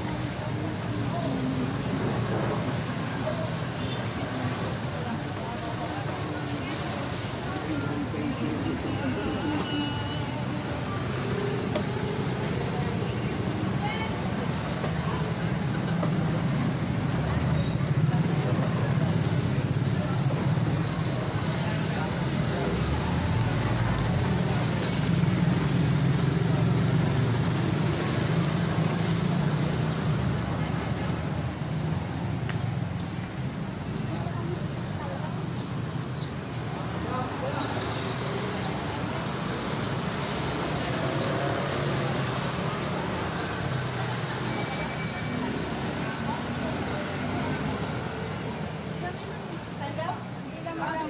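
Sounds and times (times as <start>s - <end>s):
indistinct voices: 0.0s - 51.0s
motorcycles and cars passing: 0.0s - 51.0s.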